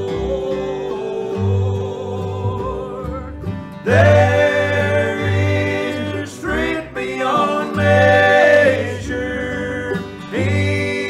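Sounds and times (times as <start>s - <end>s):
acoustic guitar: 0.0s - 11.0s
men singing gospel: 0.0s - 11.0s
upright bass: 0.0s - 11.0s.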